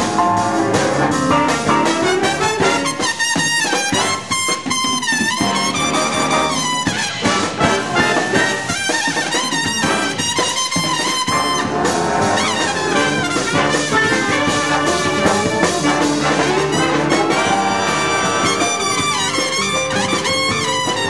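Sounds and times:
big band playing jazz: 0.0 - 21.0
trumpets and trombones: 0.0 - 21.0.

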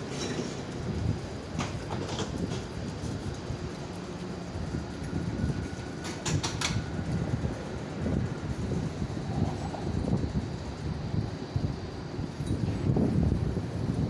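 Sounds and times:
tram doors clicking and clunking: 0.0 - 14.0
tram rumbling: 0.0 - 14.0.

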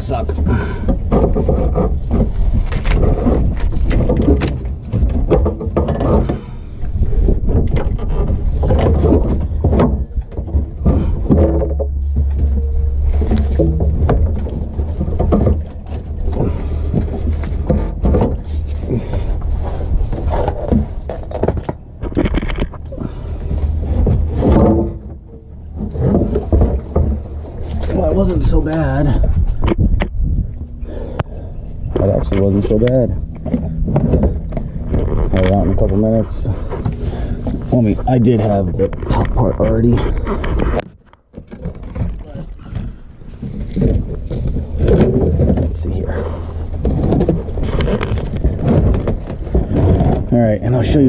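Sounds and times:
fuel sloshing: 0.0 - 51.0
tank knocking and scraping: 0.0 - 51.0.

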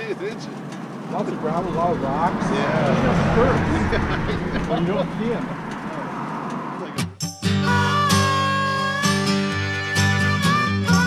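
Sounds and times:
motorcycle: 0.0 - 7.0
background music with guitar: 7.0 - 11.0.

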